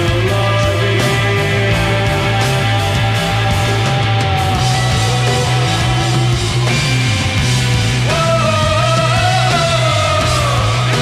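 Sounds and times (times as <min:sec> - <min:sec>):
pulsing bass line: 0:00.0 - 0:11.0
rock band playing live: 0:00.0 - 0:11.0.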